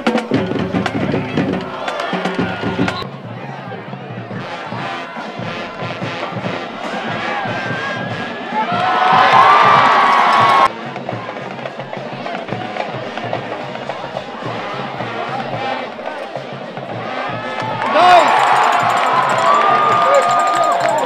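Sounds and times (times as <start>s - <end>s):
music with beat and bass: 0.0s - 3.1s, 4.2s - 21.0s
people shouting: 0.9s - 10.7s, 12.1s - 21.0s.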